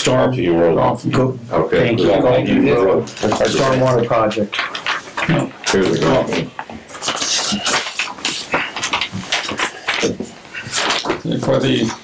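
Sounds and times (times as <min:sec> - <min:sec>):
paper ripping and crinkling: 0:03.1 - 0:04.0, 0:07.0 - 0:12.0.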